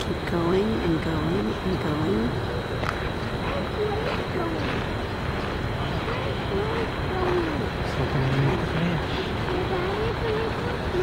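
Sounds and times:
faint crowd voices: 0.0s - 11.0s
traffic noise: 0.0s - 11.0s.

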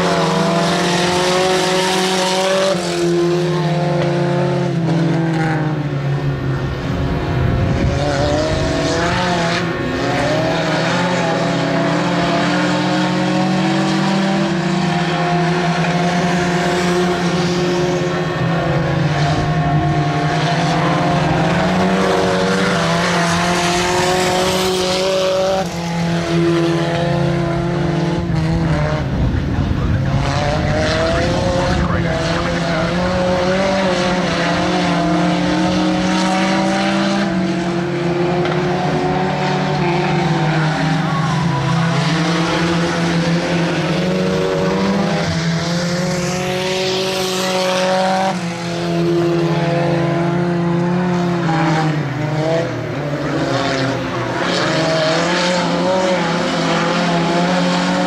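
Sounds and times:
racing car engines: 0.0s - 58.0s.

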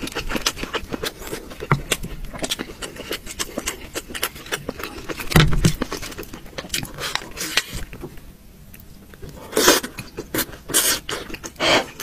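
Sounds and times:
clicky chewing noises: 0.0s - 8.1s.

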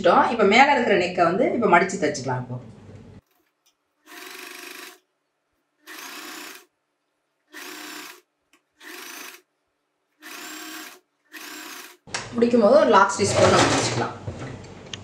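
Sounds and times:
electric sewing machine stitching: 3.2s - 5.0s, 5.8s - 6.7s, 7.5s - 9.5s, 10.2s - 12.1s.

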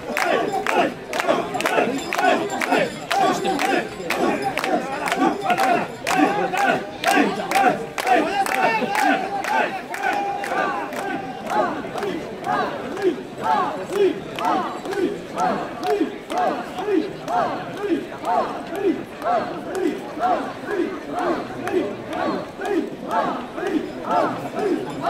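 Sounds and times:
people shouting a rhythmic chant: 0.0s - 25.0s.

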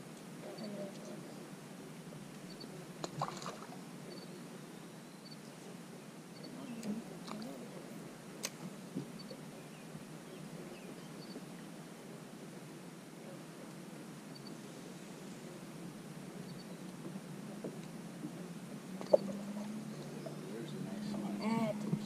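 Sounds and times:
faint steady hiss: 0.0s - 22.0s.

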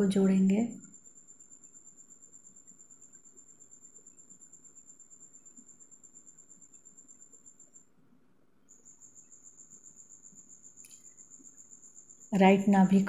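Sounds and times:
cricket chirping: 0.0s - 8.0s, 8.6s - 13.0s.

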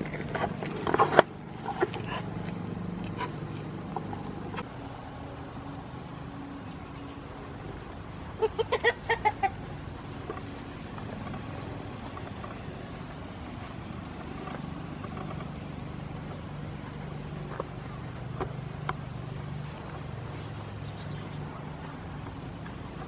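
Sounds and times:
chicken clucking: 8.4s - 9.6s.

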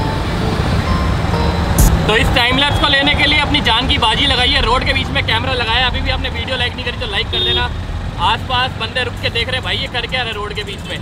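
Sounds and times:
cars passing close by: 0.0s - 9.7s.

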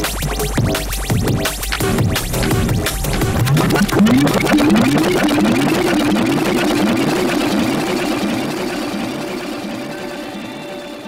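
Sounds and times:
rising pitch sweeps: 2.9s - 11.0s.

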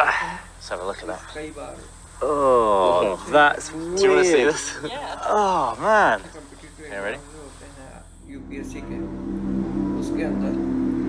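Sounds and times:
man exclaiming in amazement: 2.2s - 6.2s.

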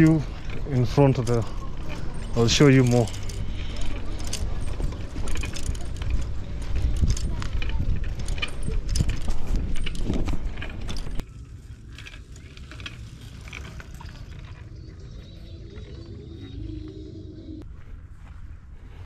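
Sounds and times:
bicycle rattling over dirt road: 0.0s - 16.5s
wind rumbling on microphone: 3.2s - 19.0s.

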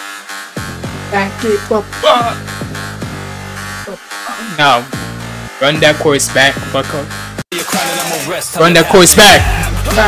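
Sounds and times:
buzzing synth bass: 0.0s - 4.2s, 4.8s - 7.4s
electronic hip-hop beat: 0.0s - 10.0s.

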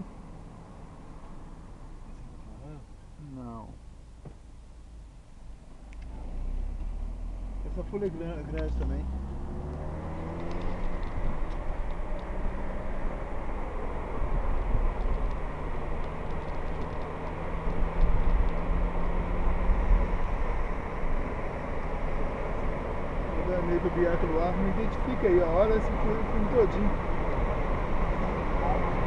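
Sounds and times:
car road noise rumble: 0.0s - 29.0s.

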